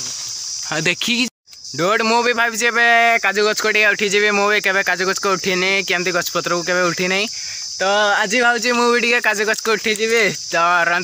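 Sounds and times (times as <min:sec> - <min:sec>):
high-pitched insect chirring: 0:00.0 - 0:11.0.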